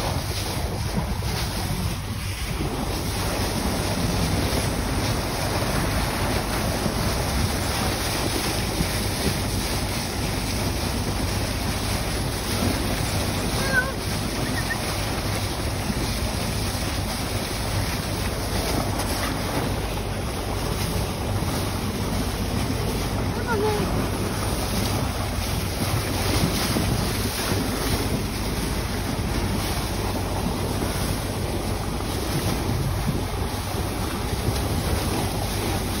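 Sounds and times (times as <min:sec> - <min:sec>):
water rushing along hull: 0:00.0 - 0:36.0
wind buffeting microphone: 0:00.0 - 0:36.0.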